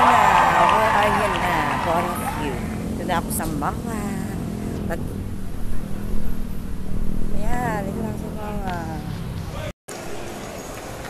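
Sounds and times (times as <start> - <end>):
woman speaking: 0.0 - 5.1, 7.3 - 9.2
road traffic drone: 0.0 - 11.0.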